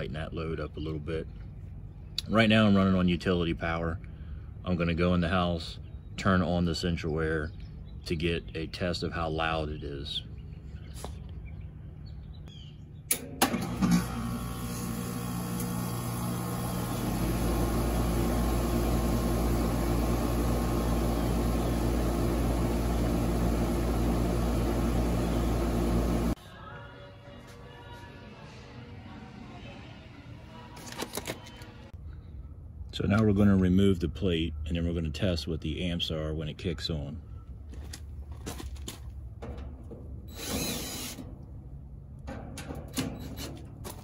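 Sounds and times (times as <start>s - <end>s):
compressor humming: 13.1s - 26.4s
heat pump clunk: 13.1s - 26.4s, 42.2s - 44.0s.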